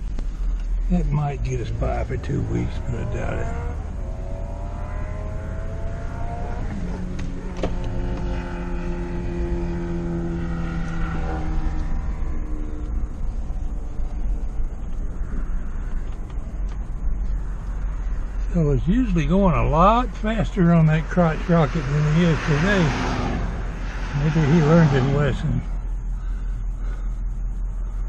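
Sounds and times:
road rumble: 0.0 - 28.0
truck engine from inside cabin: 10.2 - 28.0.

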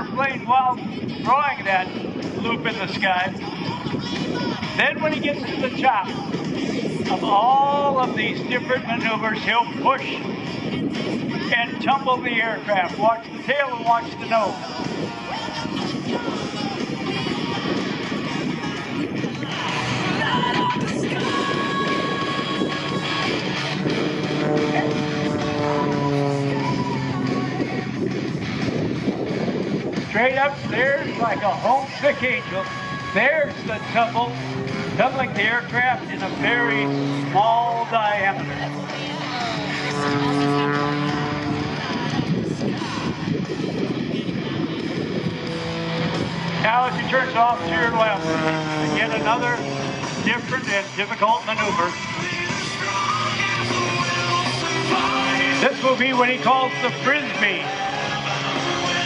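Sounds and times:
plane engine drone: 0.0 - 59.0
guitar music: 22.1 - 28.6, 32.7 - 42.4, 43.9 - 50.6, 52.6 - 59.0.

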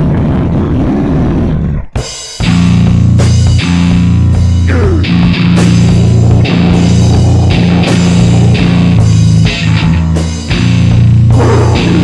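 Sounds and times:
deep guttural growling roar: 5.7 - 9.5, 11.3 - 12.0.

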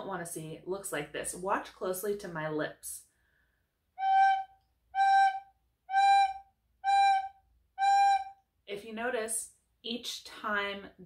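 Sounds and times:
recorder playing short notes: 4.0 - 8.4.

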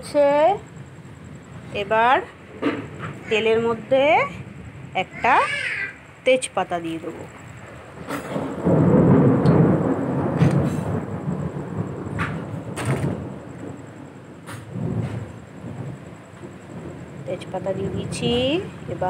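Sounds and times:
thunder rumbling: 0.0 - 19.0.

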